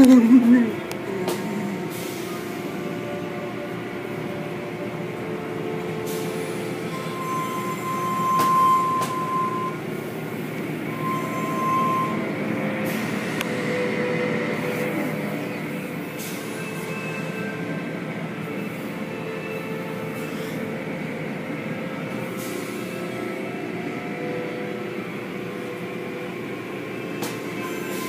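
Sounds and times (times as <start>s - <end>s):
car wash machinery running: 0.0s - 28.0s
short high squeals: 6.8s - 9.8s, 10.9s - 12.2s.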